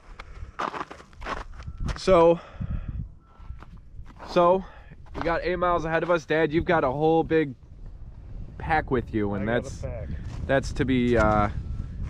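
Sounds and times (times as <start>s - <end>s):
footsteps on gravel and snow: 0.0s - 2.1s, 3.4s - 6.4s.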